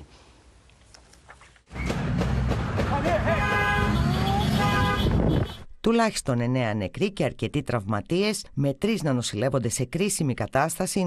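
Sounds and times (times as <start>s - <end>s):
wind: 0.0s - 6.5s
traffic rumble: 0.6s - 5.8s
car horn: 3.0s - 5.7s.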